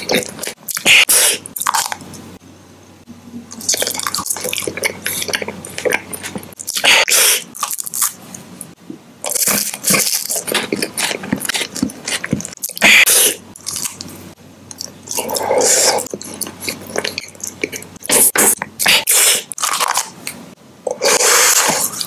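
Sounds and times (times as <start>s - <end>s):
chewing with crunching: 3.5s - 8.4s, 9.3s - 20.4s.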